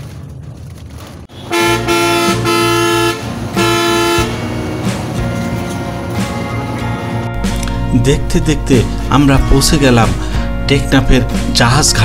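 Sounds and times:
bus rumbling: 0.0s - 12.0s
vehicle horn honking: 1.3s - 4.6s.

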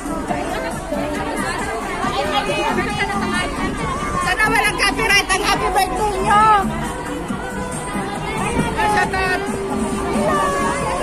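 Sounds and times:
background music: 0.0s - 11.0s
women chattering: 0.0s - 11.0s.

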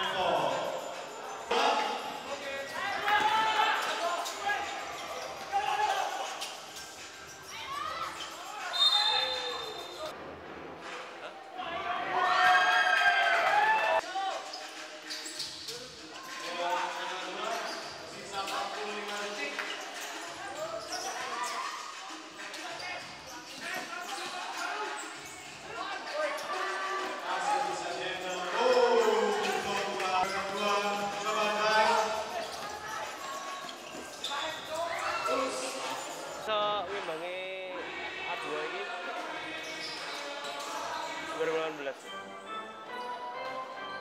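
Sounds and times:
people calling out: 28.5s - 30.0s.

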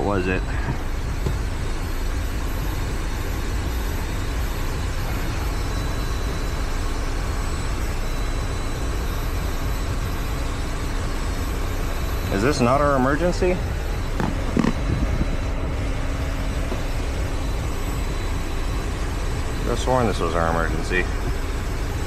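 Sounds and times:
faint high-pitched whines: 0.0s - 22.0s
low rumble and airflow hiss: 0.0s - 22.0s.

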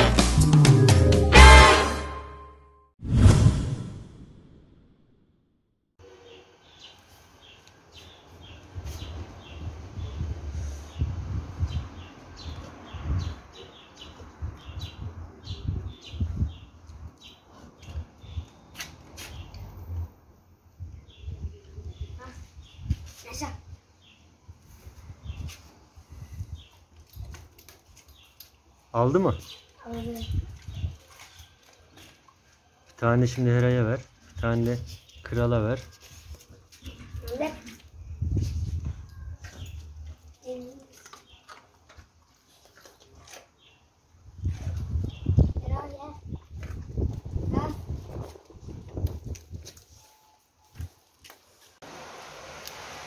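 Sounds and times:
small birds chirping: 6.0s - 19.7s, 20.9s - 35.7s, 36.3s - 48.3s.

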